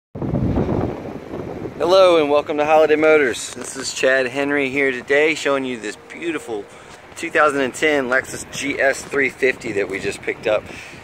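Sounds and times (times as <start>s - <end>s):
wind rumbling on microphone: 0.2s - 11.0s
man speaking: 1.8s - 11.0s.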